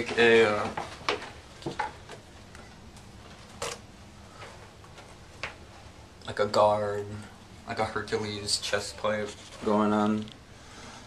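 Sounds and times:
soft clicks and rustles: 0.0s - 7.6s, 8.2s - 10.5s.

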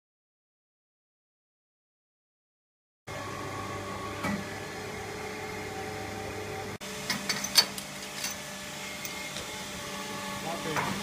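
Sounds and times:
machine hum: 3.1s - 11.0s.

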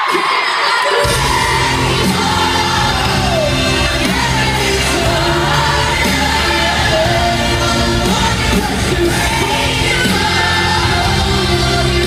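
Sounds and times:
live pop concert music: 0.0s - 12.0s.

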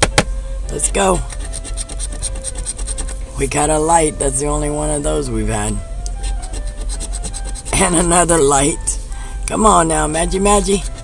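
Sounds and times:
coin scraping lottery ticket: 1.2s - 3.2s, 6.2s - 8.0s.

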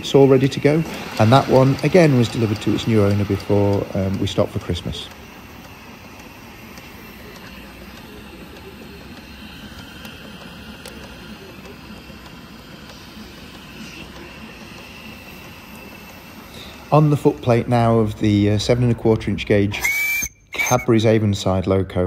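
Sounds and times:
steam locomotive hissing: 0.0s - 21.6s.

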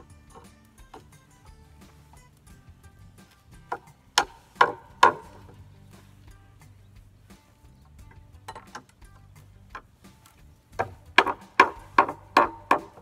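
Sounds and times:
hand saw cutting wood: 3.5s - 6.2s, 10.1s - 13.0s.

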